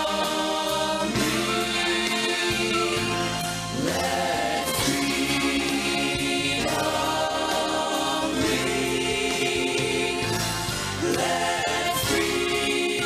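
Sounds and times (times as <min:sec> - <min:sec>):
vocal ensemble singing in harmony: 0:00.0 - 0:13.0.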